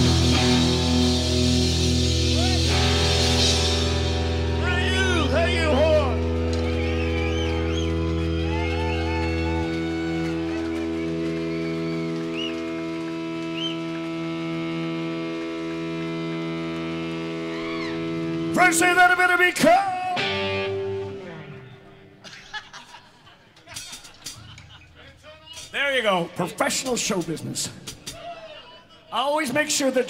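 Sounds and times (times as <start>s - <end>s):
electric guitar and bass droning: 0.0s - 22.2s.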